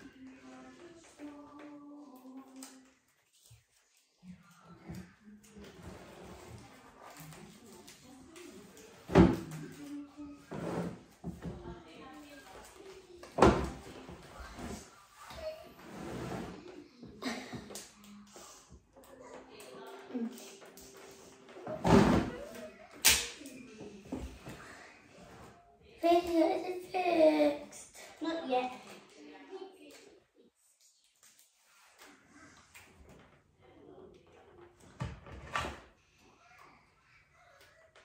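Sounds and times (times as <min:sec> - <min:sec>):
children's voices: 0:26.0 - 0:30.5, 0:36.2 - 0:38.0.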